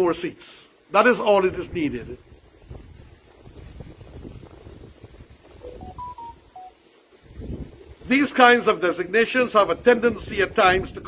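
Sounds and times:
short electronic beeps: 5.6s - 6.8s.

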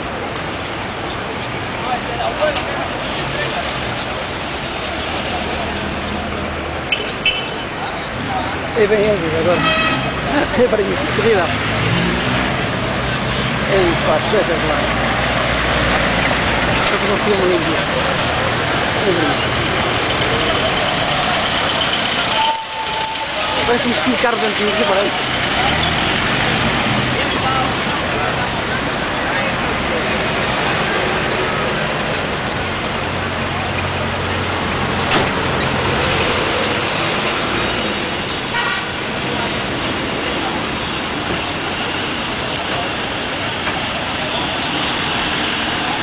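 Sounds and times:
street noise: 0.0s - 46.0s
car door slamming: 35.0s - 35.4s
short car horn toot: 38.5s - 38.9s.

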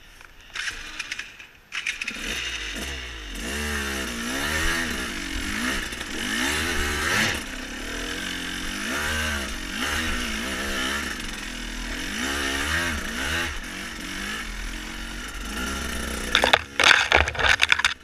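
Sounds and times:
dirt bike engine revving: 2.0s - 18.0s.

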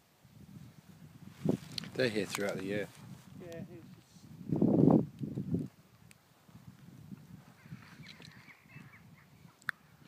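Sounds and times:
thin high bird calls: 7.5s - 10.0s.

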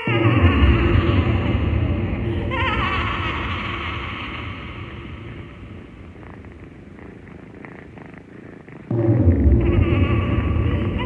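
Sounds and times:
faint crackling: 0.0s - 11.0s
low rumbling drone: 0.1s - 11.0s
bass-heavy music passage: 8.9s - 11.0s.

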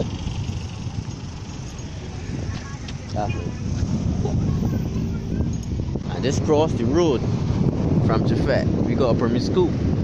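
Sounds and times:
traffic: 0.0s - 10.0s
wind rumbling on microphone: 0.0s - 10.0s.

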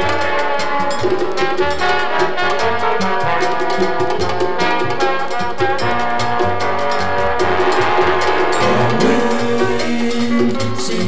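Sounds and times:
light percussion: 0.0s - 11.0s
trombones playing chords: 0.0s - 11.0s
bass line: 5.8s - 11.0s.

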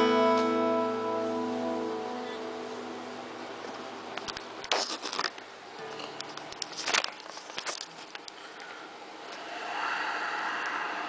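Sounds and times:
camera handling rustle: 4.7s - 5.4s, 6.6s - 8.4s.

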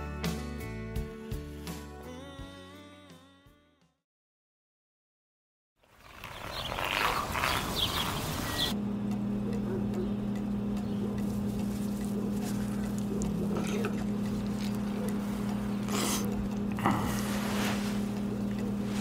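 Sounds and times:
motor running steadily: 7.3s - 19.0s
voices: 9.3s - 19.0s.

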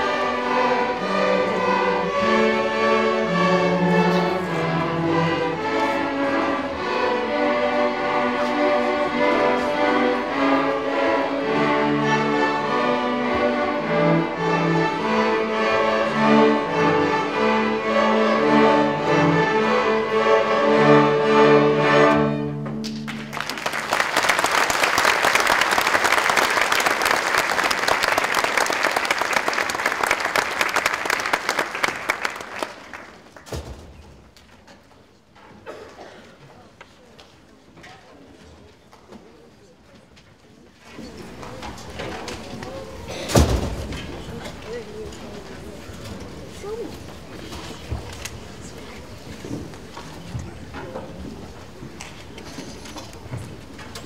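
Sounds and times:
string orchestra playing: 0.0s - 23.9s
audience applause: 23.1s - 33.4s.

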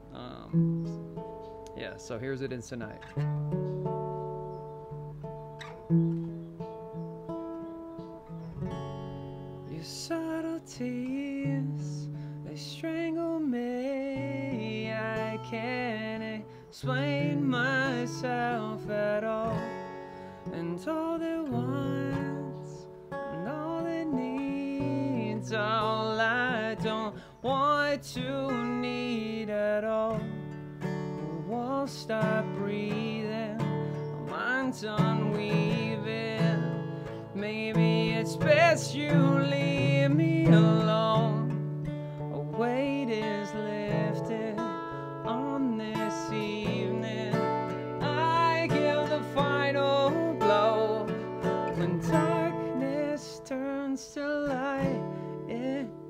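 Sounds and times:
acoustic guitar strumming: 0.0s - 56.0s
man singing: 9.7s - 19.9s, 20.5s - 30.4s, 31.1s - 41.7s, 42.3s - 56.0s.

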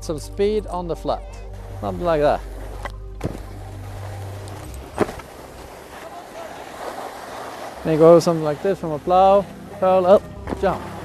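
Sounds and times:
skis scraping over snow: 1.6s - 11.0s.

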